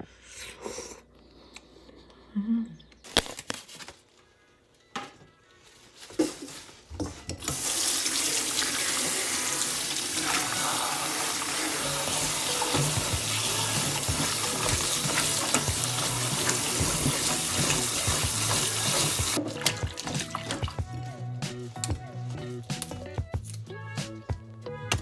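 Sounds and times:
tap water running into metal bowl: 0:07.4 - 0:20.9.

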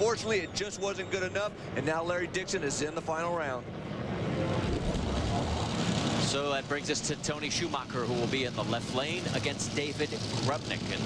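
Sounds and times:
dragster engine at full throttle: 0:04.4 - 0:11.0.

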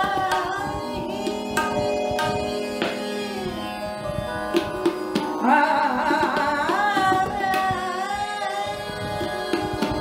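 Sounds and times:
tabla strokes: 0:00.0 - 0:10.0
steady drone: 0:00.6 - 0:06.4.

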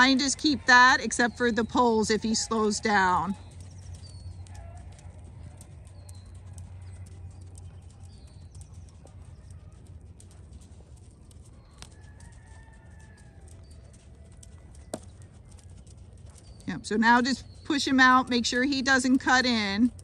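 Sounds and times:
low steady rumble: 0:00.0 - 0:20.0
hoofbeats on sand: 0:03.1 - 0:17.8
bird chirps: 0:03.3 - 0:12.4, 0:13.4 - 0:19.7
distant rooster crow: 0:11.6 - 0:15.2.

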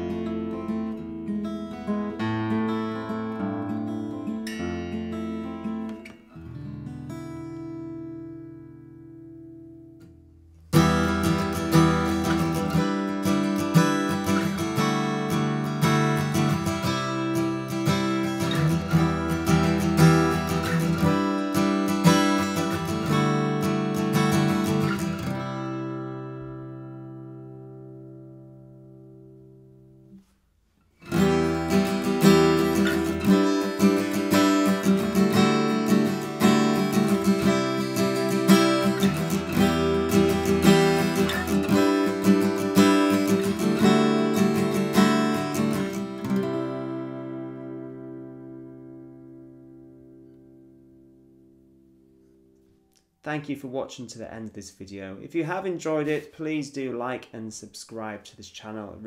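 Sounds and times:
acoustic guitar strumming: 0:00.0 - 0:30.3, 0:31.0 - 0:53.8.

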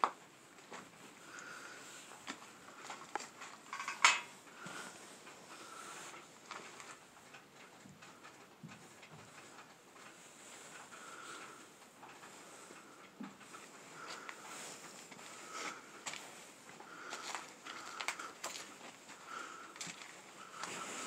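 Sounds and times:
debris knocking and clinking: 0:03.6 - 0:04.3.

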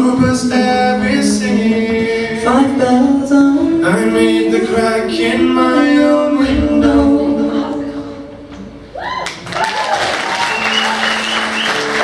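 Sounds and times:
folk band singing in harmony: 0:00.0 - 0:08.9.

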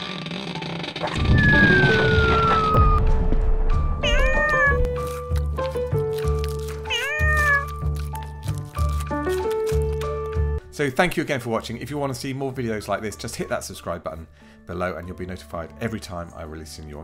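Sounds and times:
falling whistle: 0:01.1 - 0:04.0
cat meowing: 0:04.0 - 0:05.0, 0:06.9 - 0:07.8.

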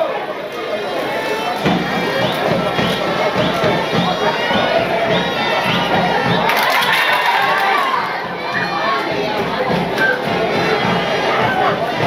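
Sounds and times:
stadium crowd shouting and cheering: 0:00.0 - 0:12.0.

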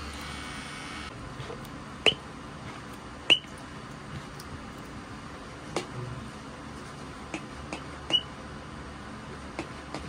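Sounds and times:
tattoo machine humming: 0:00.0 - 0:01.1.

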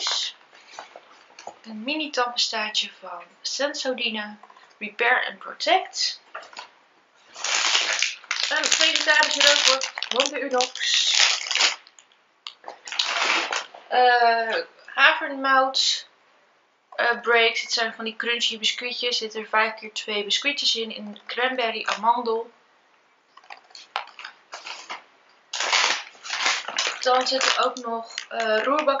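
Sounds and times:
packaging rustling: 0:06.5 - 0:12.1, 0:12.7 - 0:13.7, 0:23.4 - 0:28.9
bag rustling: 0:23.8 - 0:28.5.

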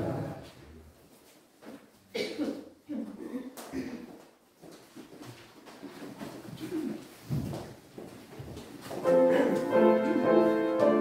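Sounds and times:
feet shuffling: 0:03.0 - 0:11.0.

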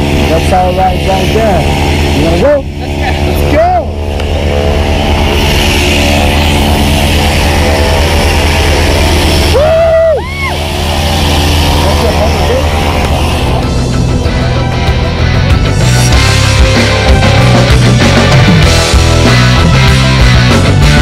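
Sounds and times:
light aircraft engine droning: 0:00.0 - 0:19.4
man whooping: 0:09.5 - 0:10.6.

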